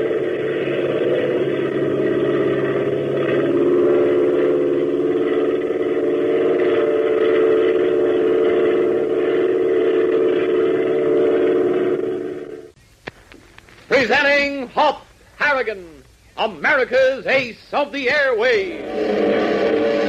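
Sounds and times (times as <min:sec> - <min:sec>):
propeller airplane engine droning: 0:00.0 - 0:20.0.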